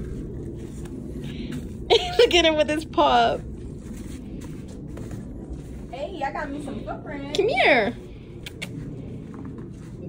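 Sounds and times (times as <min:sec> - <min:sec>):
footsteps in snow: 0:00.0 - 0:10.0
steady low rumble: 0:00.0 - 0:10.0.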